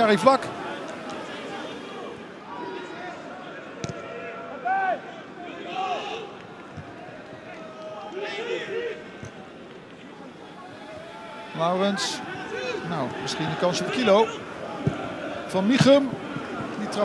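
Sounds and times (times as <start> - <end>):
crowd murmur: 0.0 - 17.0
players shouting: 0.0 - 17.0.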